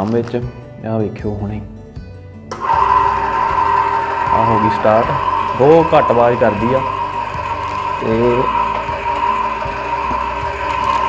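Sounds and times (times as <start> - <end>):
electric oil press motor whine: 2.5 - 11.0.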